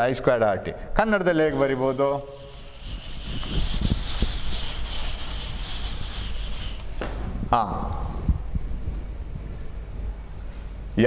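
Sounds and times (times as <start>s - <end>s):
eraser scrubbing a blackboard: 1.3s - 7.0s.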